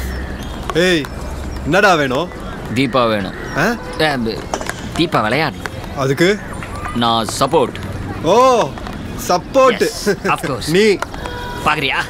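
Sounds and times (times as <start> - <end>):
man speaking: 5.0 - 11.0.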